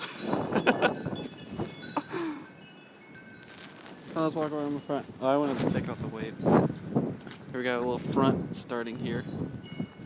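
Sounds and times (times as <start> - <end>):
person laughing: 0.0 - 1.2, 1.9 - 2.5
wind chimes tinkling: 0.0 - 10.0.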